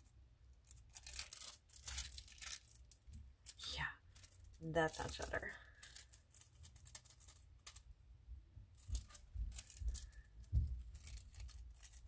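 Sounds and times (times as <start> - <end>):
small objects clicking and rustling: 0.0 - 7.9, 8.8 - 12.0.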